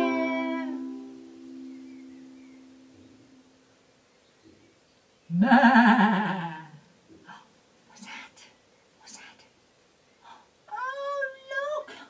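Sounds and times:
woman exclaiming: 0.0 - 0.8, 10.7 - 12.0.

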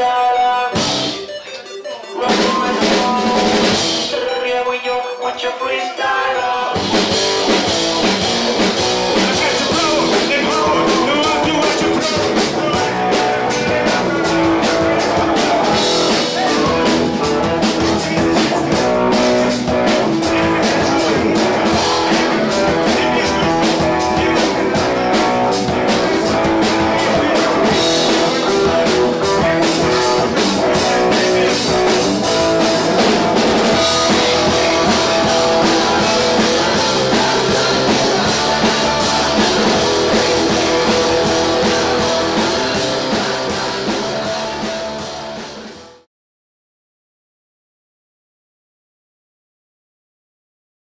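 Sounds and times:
rock band playing loud: 0.0 - 46.1
shouted lead vocal: 2.1 - 45.5
fast driving drumbeat: 2.2 - 4.2, 6.8 - 46.1.

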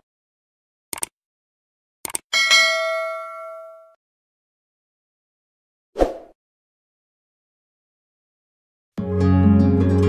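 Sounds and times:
bell ding: 2.4 - 4.0.

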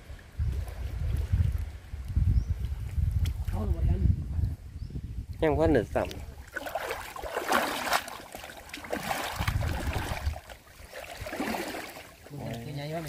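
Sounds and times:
water sloshing and splashing: 5.8 - 13.0
water streaming through net: 6.4 - 12.6.

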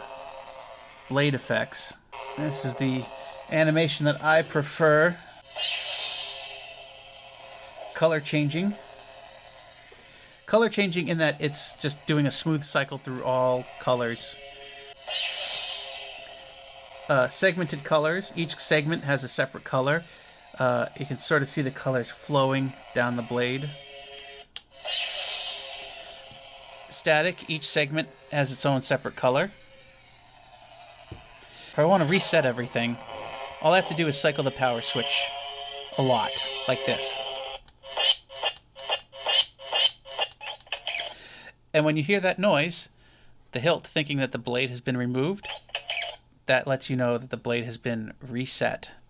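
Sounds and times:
electronic lightsaber sound effect: 0.0 - 24.0, 24.7 - 30.0, 30.8 - 37.4.

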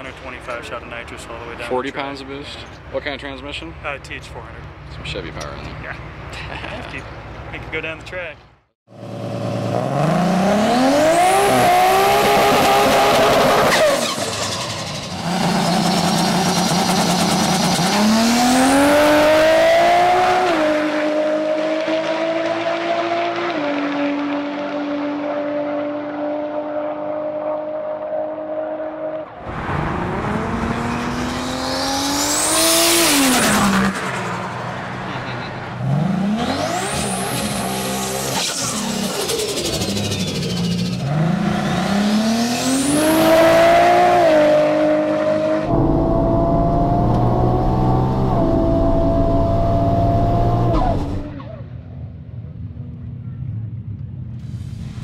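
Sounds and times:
car engine revving: 9.0 - 51.4.

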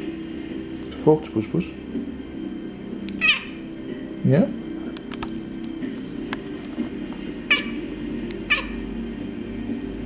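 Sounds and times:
cat chirping: 3.2 - 3.6, 7.5 - 7.8, 8.5 - 8.8.

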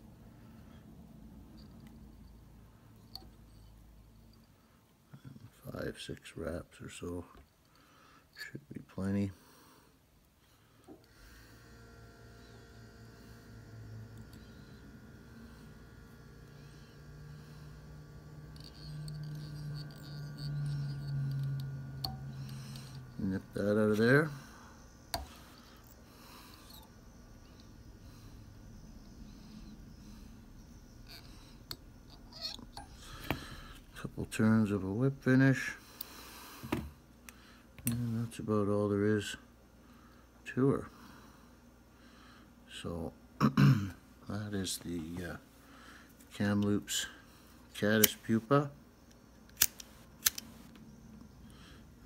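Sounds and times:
tool clicking: 49.5 - 50.5.

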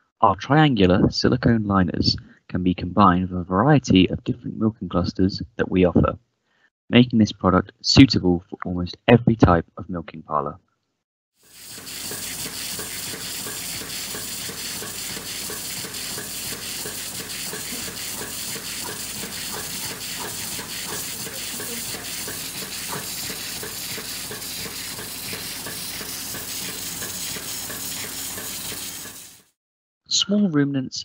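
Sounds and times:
milking machine hissing: 11.4 - 29.6.

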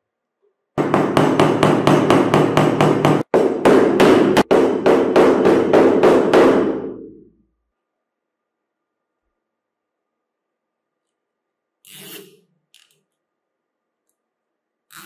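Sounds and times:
hammer tapping wooden dowel: 0.8 - 6.8.

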